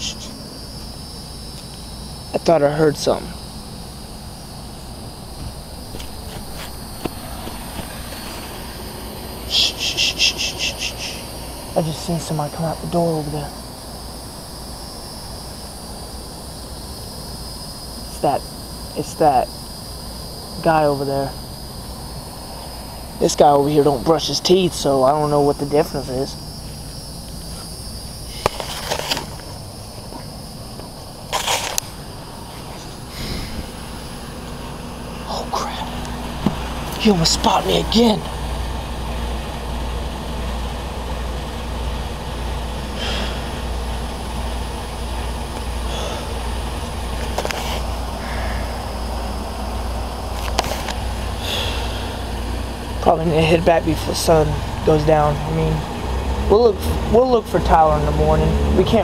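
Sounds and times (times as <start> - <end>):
insect chirping pulses: 0.0 - 59.0.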